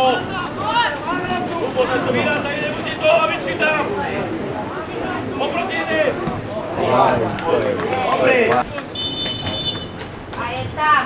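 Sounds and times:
men shouting: 0.0 - 8.6.

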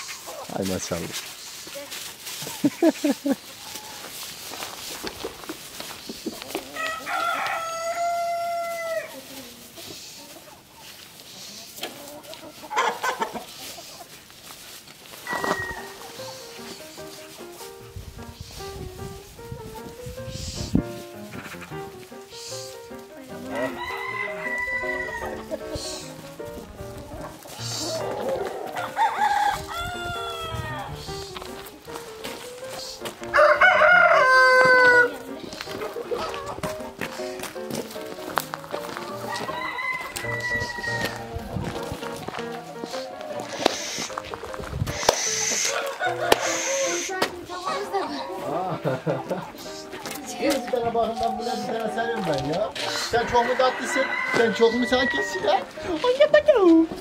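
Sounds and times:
rooster crowing: 6.7 - 9.2, 15.2 - 16.4, 23.5 - 25.6, 27.6 - 31.0, 33.3 - 35.2, 39.2 - 41.5, 45.5 - 47.0, 51.1 - 55.6
hen calls: 20.2 - 26.4, 27.2 - 31.6, 42.4 - 48.4.

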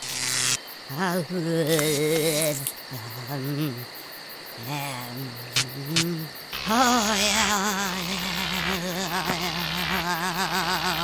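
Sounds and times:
man humming wordlessly: 0.9 - 4.0, 4.6 - 11.0.

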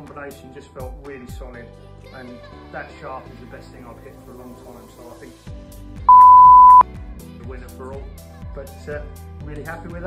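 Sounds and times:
background music: 0.0 - 10.0
censor bleep: 6.1 - 6.8.

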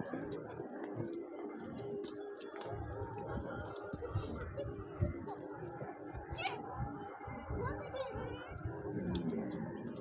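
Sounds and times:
wind buffeting microphone: 2.7 - 10.0.

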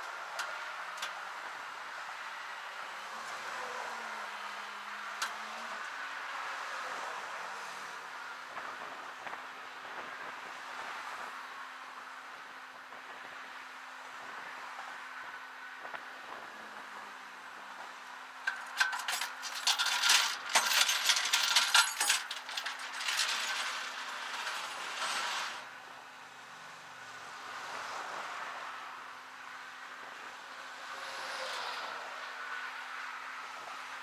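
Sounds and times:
passing traffic: 0.0 - 34.0
wind and road noise: 0.0 - 34.0
loud clattering and clicks: 18.5 - 25.6.

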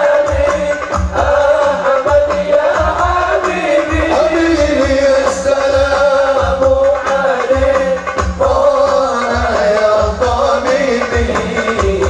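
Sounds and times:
deep beats on frame drums: 0.0 - 12.0
male voices singing: 0.0 - 12.0.

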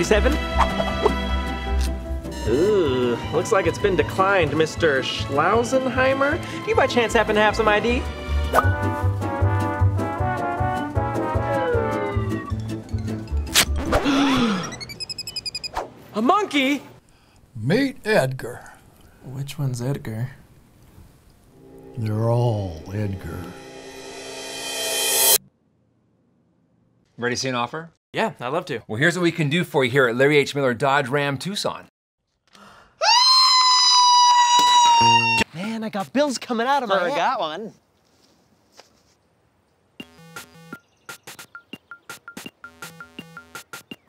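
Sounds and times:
comedic brass music: 0.1 - 3.2, 6.8 - 12.9
high chattering chirps: 14.6 - 15.8, 40.0 - 44.0
man's high-pitched scream: 33.0 - 35.4.

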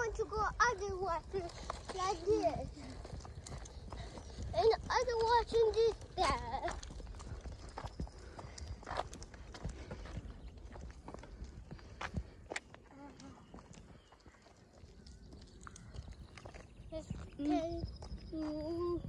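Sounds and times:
footsteps on tarmac: 0.0 - 19.0
wind rumble on microphone: 0.0 - 19.0.

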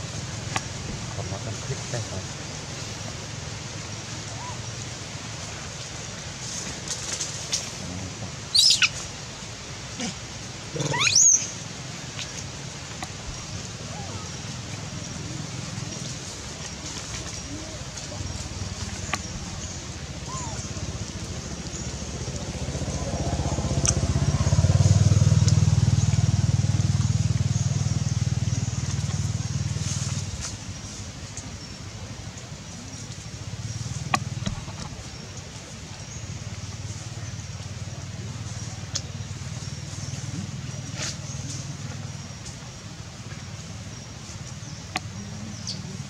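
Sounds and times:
infant monkey squealing: 8.5 - 9.0, 10.8 - 11.5, 20.2 - 20.6
motorbike engine passing by: 20.2 - 30.5.

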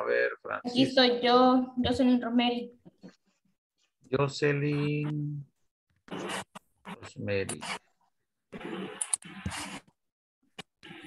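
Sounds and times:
person speaking over video call: 0.0 - 2.8, 4.0 - 5.6, 6.9 - 7.8.

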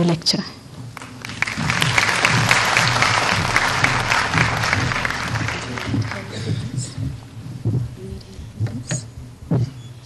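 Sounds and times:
microphone handling bumps: 0.7 - 10.0.

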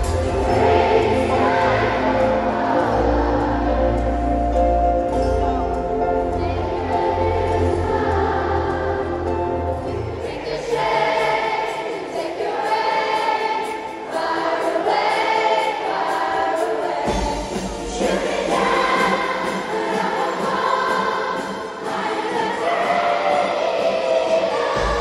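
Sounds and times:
children's choir singing: 0.0 - 25.0
musical accompaniment: 0.0 - 25.0.

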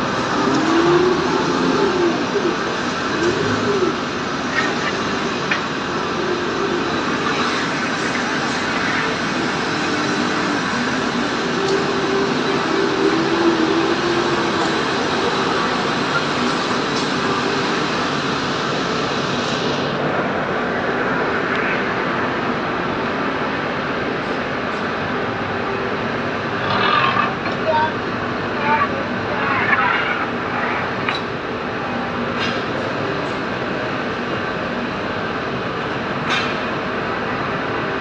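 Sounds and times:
diesel forklift driving: 0.0 - 38.0
factory machinery din: 0.0 - 38.0.

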